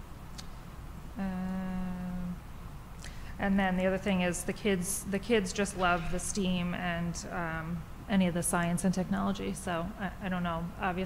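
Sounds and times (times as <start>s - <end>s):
woman saying uh: 1.2s - 2.4s.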